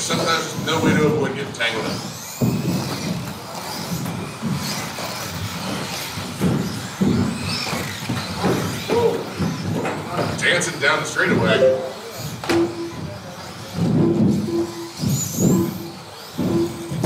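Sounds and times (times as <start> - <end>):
rc cars motor whine: 0.0 - 11.3, 11.9 - 17.0.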